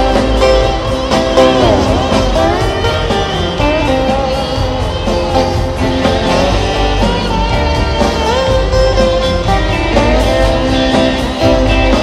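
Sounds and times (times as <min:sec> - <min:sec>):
electric guitar solo: 0:00.0 - 0:12.0
rock band playing: 0:00.0 - 0:12.0.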